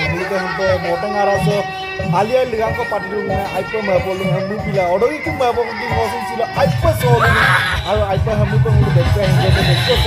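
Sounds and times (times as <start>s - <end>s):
men chanting and calling: 0.0s - 10.0s
music playing: 0.0s - 10.0s.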